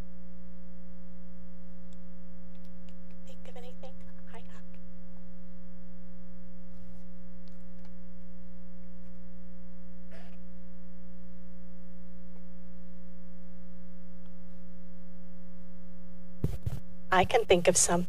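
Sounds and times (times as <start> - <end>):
electrical mains hum: 0.0 - 18.0.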